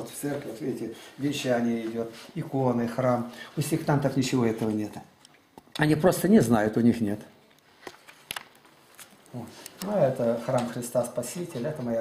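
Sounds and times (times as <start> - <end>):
person speaking: 0.0 - 7.5, 9.1 - 12.0.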